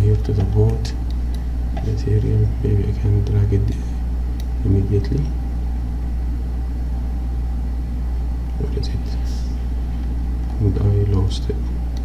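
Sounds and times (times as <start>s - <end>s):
narrator speaking: 0.0s - 1.1s, 1.8s - 4.0s, 4.6s - 5.4s, 8.5s - 9.7s, 10.5s - 11.8s
steady low hum: 0.0s - 12.0s.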